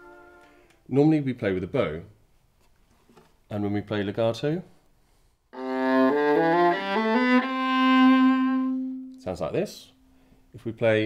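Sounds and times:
viola bowed legato: 5.6s - 9.3s.

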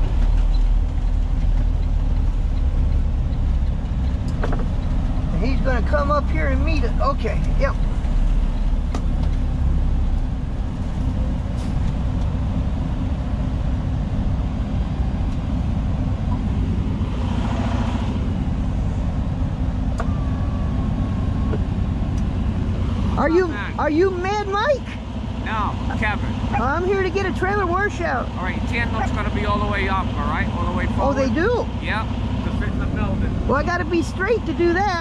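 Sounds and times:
diesel truck engine running: 0.0s - 35.0s
air brake hiss: 11.6s - 11.9s.

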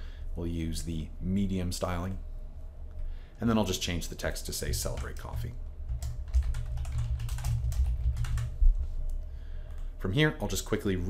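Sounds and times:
typing on computer keyboard: 4.8s - 8.6s.

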